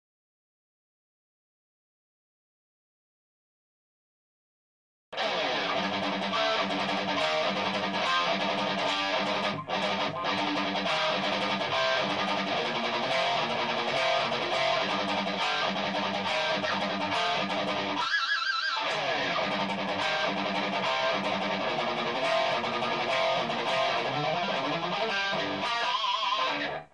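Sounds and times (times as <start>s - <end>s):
distorted electric guitar riffs: 5.2s - 26.9s.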